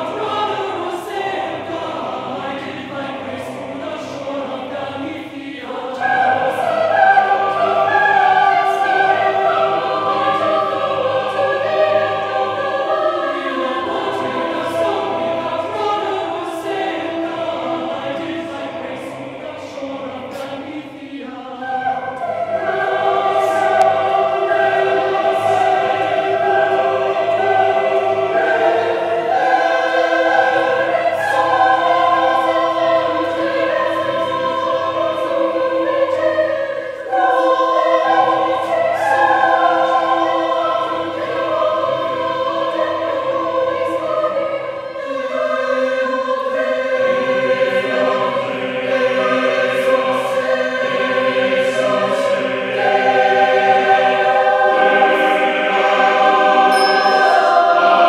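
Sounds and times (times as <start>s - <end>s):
choir singing unaccompanied: 0.0s - 58.0s.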